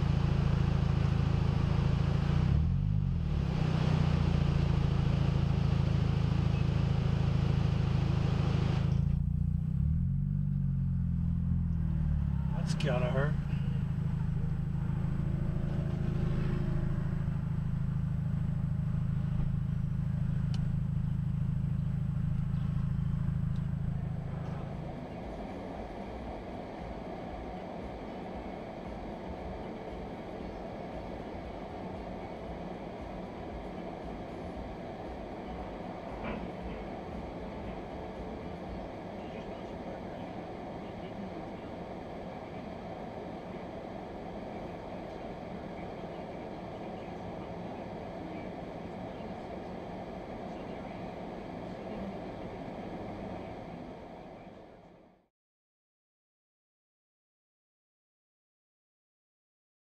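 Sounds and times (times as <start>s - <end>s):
car road and engine noise: 0.0s - 55.3s.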